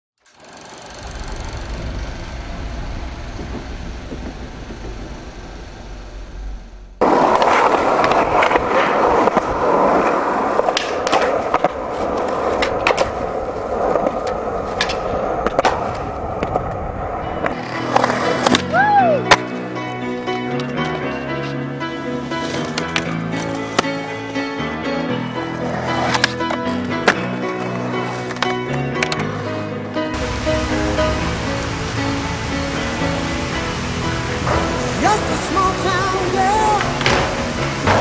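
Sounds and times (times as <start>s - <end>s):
skateboard wheels rolling on concrete: 0.2s - 38.0s
skateboard clacks popping and landing: 7.0s - 13.2s, 25.8s - 29.3s, 36.8s - 38.0s
music: 17.2s - 38.0s.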